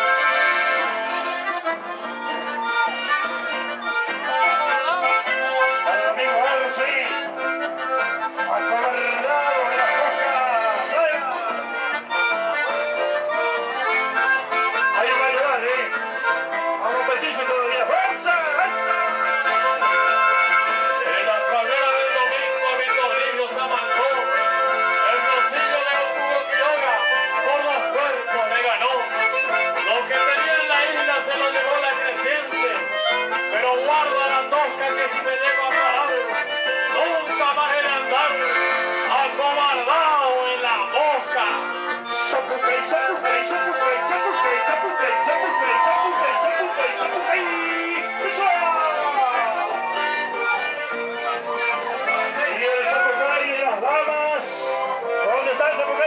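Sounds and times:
accordion: 0:00.0 - 0:56.0
acoustic guitars: 0:00.0 - 0:56.0
bass guitar: 0:00.0 - 0:56.0.

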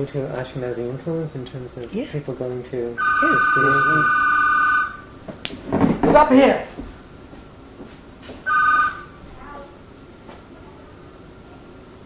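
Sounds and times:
electronic telephone ring: 0:03.0 - 0:05.1, 0:08.5 - 0:09.2.

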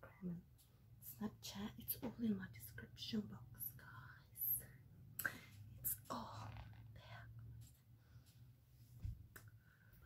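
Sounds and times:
woman whispering: 0:00.0 - 0:04.8, 0:05.8 - 0:07.6.

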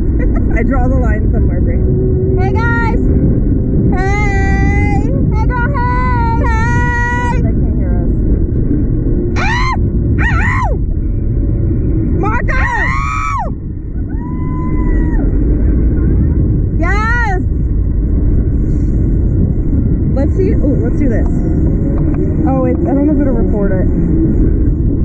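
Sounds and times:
wind rushing across microphone: 0:00.0 - 0:25.0
women screaming and whooping: 0:09.4 - 0:10.8, 0:12.4 - 0:15.6.

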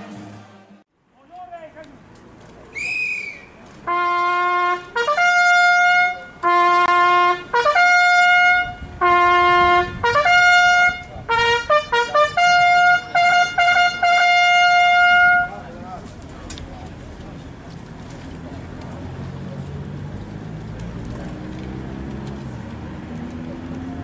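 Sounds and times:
solo trumpet call: 0:02.8 - 0:15.6.

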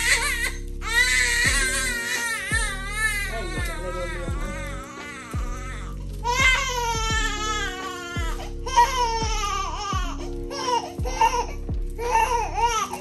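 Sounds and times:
baby crying: 0:00.0 - 0:13.0
music with deep bass hits: 0:00.0 - 0:13.0.

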